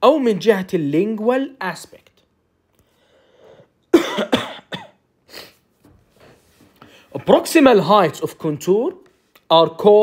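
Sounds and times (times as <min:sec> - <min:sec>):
person coughing: 0:03.9 - 0:05.6.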